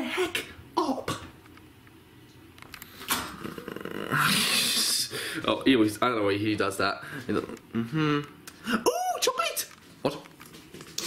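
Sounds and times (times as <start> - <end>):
person growling: 3.3 - 4.9.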